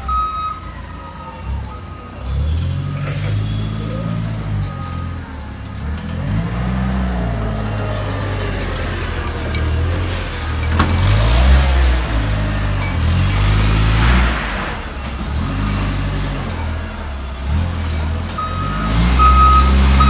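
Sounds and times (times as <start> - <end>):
reversing alarm beeps: 0.0 - 2.4, 3.4 - 5.5, 18.4 - 20.0
forklift engine: 0.0 - 20.0.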